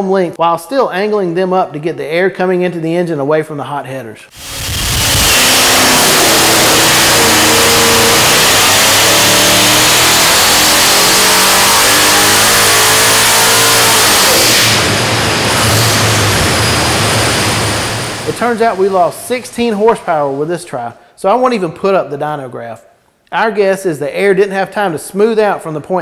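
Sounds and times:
engine at full throttle: 4.4s - 19.8s
supercharger whine: 4.4s - 20.4s.

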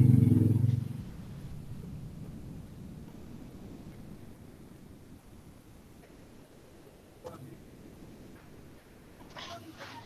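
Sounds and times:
vehicle engine drone: 0.0s - 6.2s.

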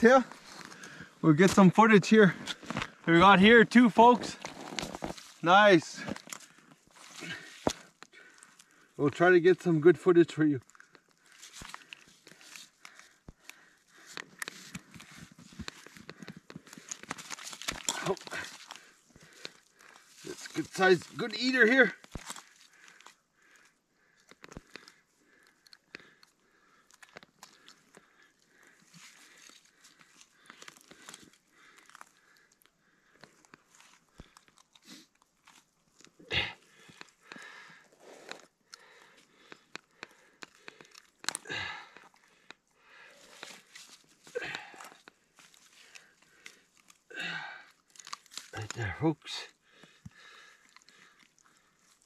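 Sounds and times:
faint clicks and crackles: 0.1s - 52.0s.

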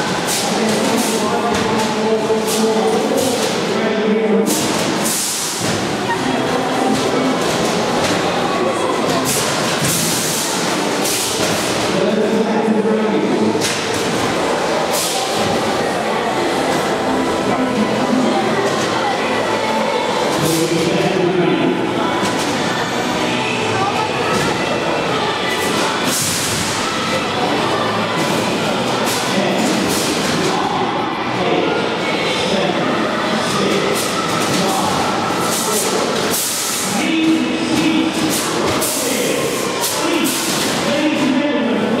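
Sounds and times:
loud crowd voices: 0.0s - 42.0s.

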